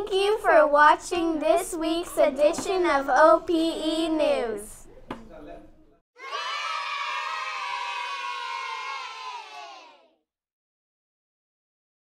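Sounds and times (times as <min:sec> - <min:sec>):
children cheering: 0:06.2 - 0:10.1.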